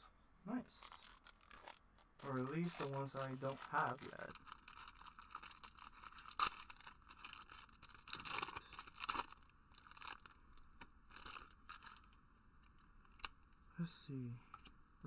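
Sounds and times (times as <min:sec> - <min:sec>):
foil wrapper tearing and crinkling: 0:00.8 - 0:12.2.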